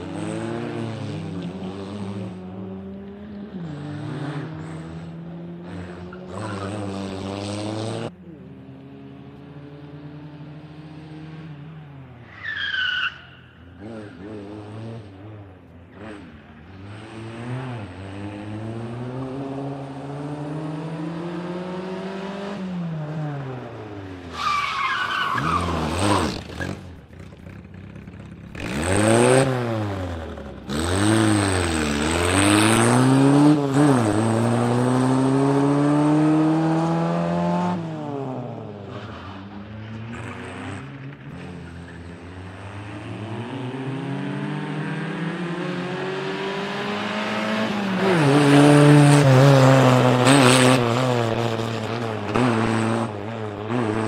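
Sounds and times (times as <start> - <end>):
car engine revving: 24.8 - 54.0.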